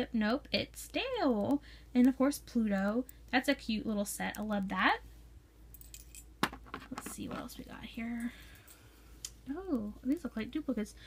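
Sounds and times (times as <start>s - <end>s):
metal pins clinking together: 5.7s - 6.4s.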